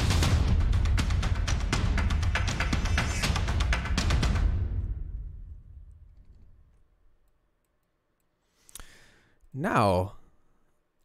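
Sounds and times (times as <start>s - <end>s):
drums and percussion: 0.0s - 5.6s.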